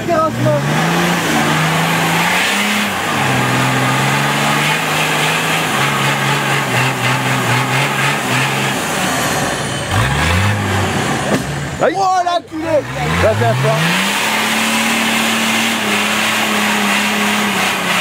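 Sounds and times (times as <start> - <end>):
off-road vehicle engine revving: 0.0 - 18.0.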